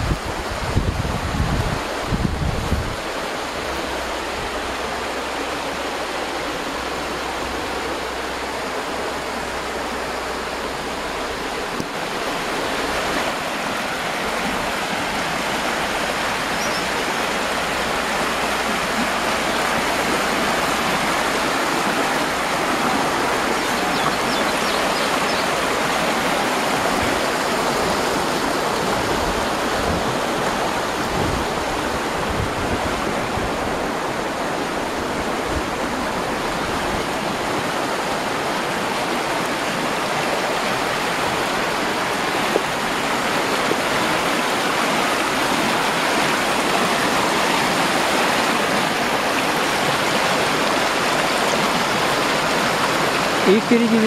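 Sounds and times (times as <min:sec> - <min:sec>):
river rushing over rapids: 0:00.0 - 0:54.0.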